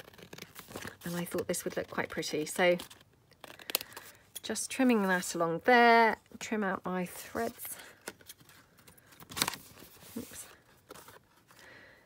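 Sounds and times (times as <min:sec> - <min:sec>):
paper rustling: 0:07.4 - 0:11.6.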